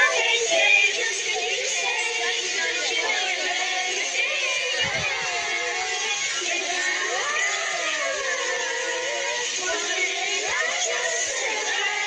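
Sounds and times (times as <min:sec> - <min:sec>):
karaoke backing track: 0:00.0 - 0:12.0
young voices singing together: 0:00.0 - 0:12.0.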